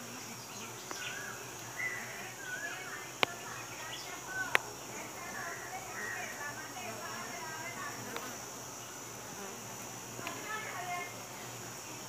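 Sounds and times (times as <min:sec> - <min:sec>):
honeybees humming: 0:00.0 - 0:12.0
faint clicks: 0:00.8 - 0:01.7, 0:03.2 - 0:03.6, 0:04.4 - 0:04.7, 0:08.1 - 0:08.4, 0:10.2 - 0:10.5.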